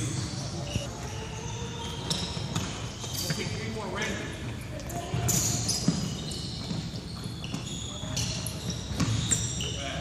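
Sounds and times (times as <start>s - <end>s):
sneaker squeaks: 0.0s - 10.0s
basketballs bouncing on hardwood: 2.1s - 2.8s, 5.0s - 7.8s, 8.8s - 9.5s.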